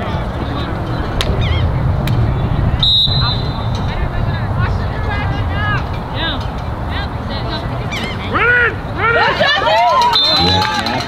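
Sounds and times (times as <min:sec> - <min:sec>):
low rumble: 0:00.0 - 0:09.9
referee's whistle: 0:02.8 - 0:03.6, 0:10.1 - 0:10.6.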